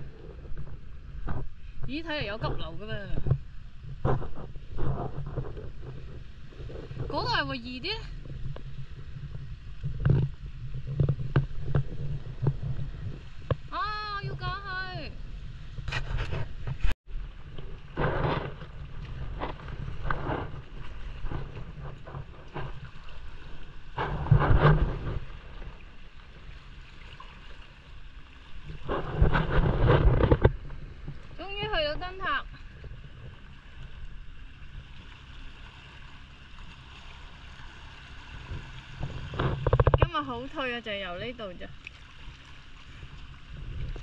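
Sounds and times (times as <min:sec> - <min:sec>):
sea water washing against rocks: 0:00.0 - 0:44.0
wind buffeting microphone: 0:00.0 - 0:44.0.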